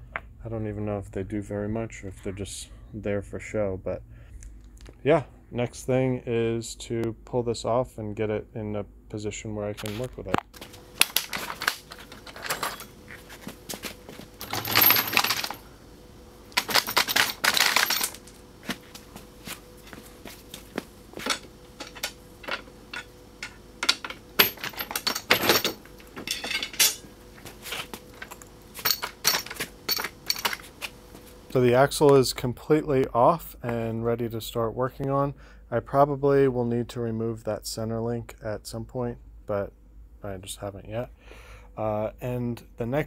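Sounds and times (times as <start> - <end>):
metal clanks and clinks: 11.0 - 13.0, 14.4 - 15.6, 16.6 - 18.3, 21.2 - 27.1, 28.2 - 30.7.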